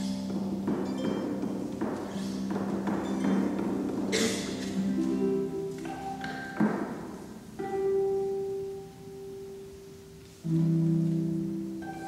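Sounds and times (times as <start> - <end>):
harps playing: 0.0 - 12.0.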